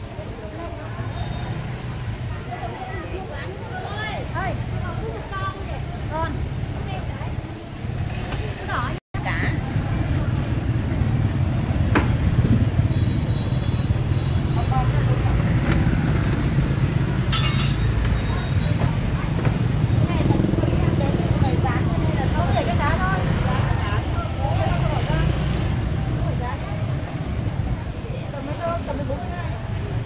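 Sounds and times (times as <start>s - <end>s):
chatter of vendors and shoppers: 0.0s - 30.0s
motorbike engines rumbling: 0.0s - 30.0s.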